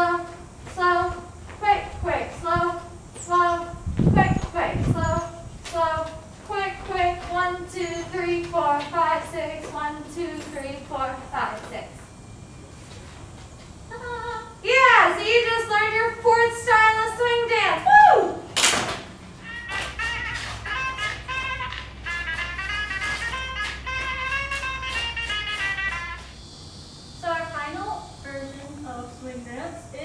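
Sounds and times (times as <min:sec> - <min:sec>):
woman talking: 0:00.8 - 0:02.8, 0:08.3 - 0:12.0, 0:13.9 - 0:18.0, 0:27.2 - 0:30.0
women cheering excitedly: 0:17.8 - 0:18.4
music playing: 0:19.4 - 0:26.4
hand clap: 0:24.4 - 0:25.8.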